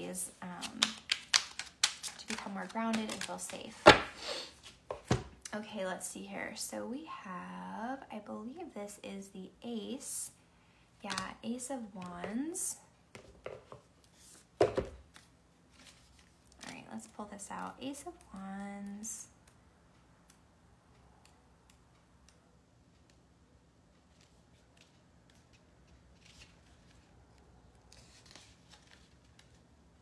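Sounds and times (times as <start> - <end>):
low room hum: 0.0 - 30.0
cards rustling: 0.6 - 5.2, 14.0 - 20.4, 21.2 - 29.8.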